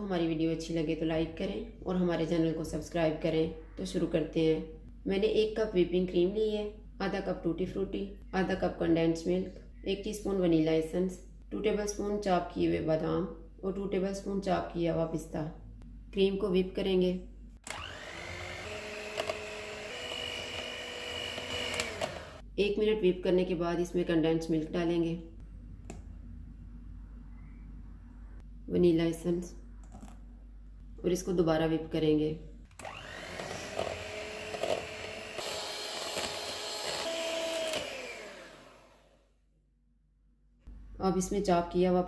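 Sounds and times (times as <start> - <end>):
electric hand mixer whining: 17.6 - 22.4, 32.7 - 39.2
mixer clicks: 17.6 - 22.4.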